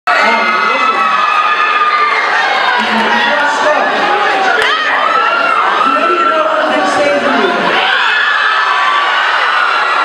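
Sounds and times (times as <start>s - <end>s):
audience cheering: 0.1s - 10.0s
high-pitched voices shouting: 0.1s - 10.0s.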